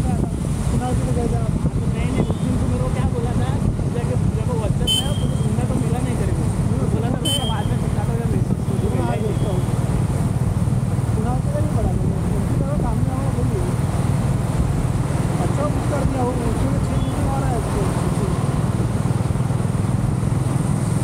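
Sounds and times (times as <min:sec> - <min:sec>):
vehicle road and wind noise: 0:00.0 - 0:21.0.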